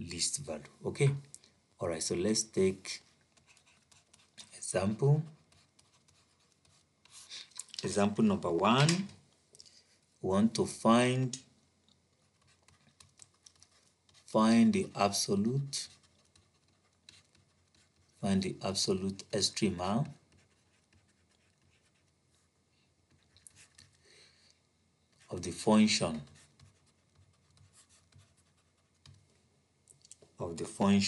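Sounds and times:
man speaking: 0:00.0 - 0:03.1, 0:04.4 - 0:05.4, 0:07.8 - 0:09.2, 0:10.2 - 0:11.5, 0:14.3 - 0:16.0, 0:18.2 - 0:20.2, 0:25.3 - 0:26.3, 0:30.4 - 0:31.0
stylus scratching on tablet: 0:02.6 - 0:07.5, 0:12.1 - 0:24.1, 0:25.1 - 0:29.3.

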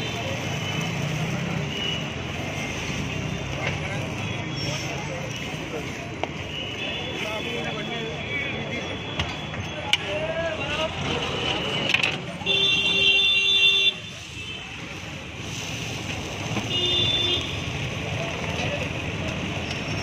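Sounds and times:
street traffic noise: 0:00.0 - 0:20.0.

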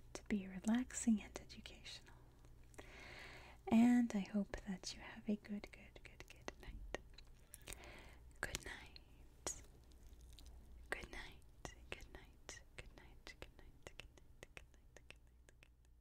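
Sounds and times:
faint whispering: 0:03.7 - 0:07.1, 0:08.4 - 0:09.7, 0:10.8 - 0:15.7.

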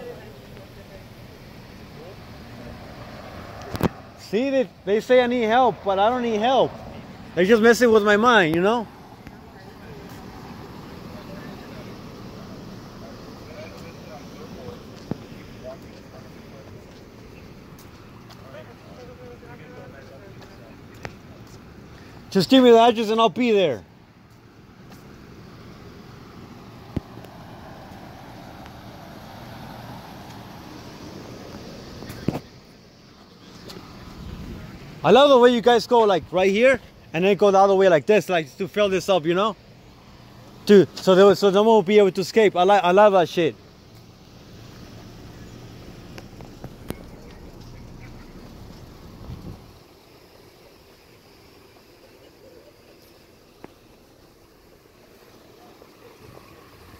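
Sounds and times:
vehicle engines running: 0:00.0 - 0:56.9.

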